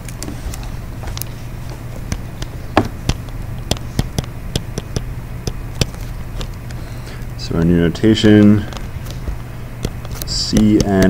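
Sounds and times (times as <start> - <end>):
low electrical hum: 0.0 - 11.0
stylus tapping on screen: 2.0 - 6.7, 8.2 - 11.0.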